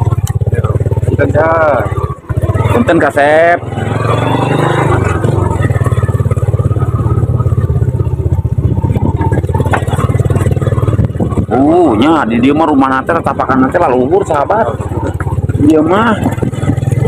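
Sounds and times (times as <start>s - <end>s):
small motorcycle engine running: 0.0s - 17.0s.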